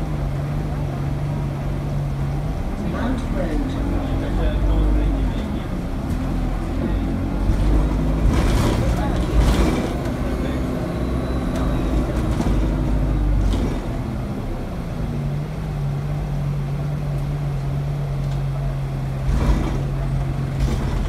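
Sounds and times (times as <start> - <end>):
bus engine rumble: 0.0 - 21.0
rattles and knocks: 19.2 - 21.0.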